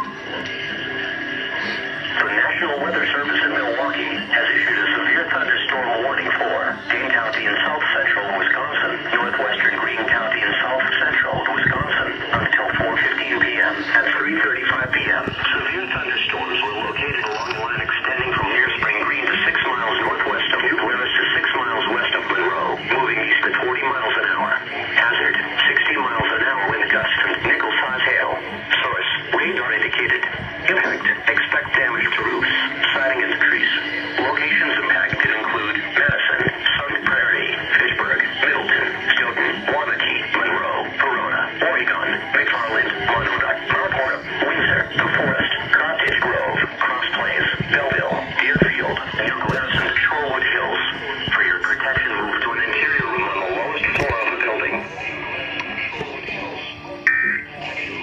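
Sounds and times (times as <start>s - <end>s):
person reading alert over radio: 1.6s - 58.0s.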